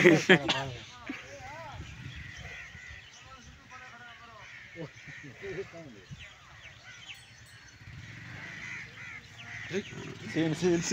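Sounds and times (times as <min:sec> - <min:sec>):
faint bird calls: 0:00.7 - 0:10.9.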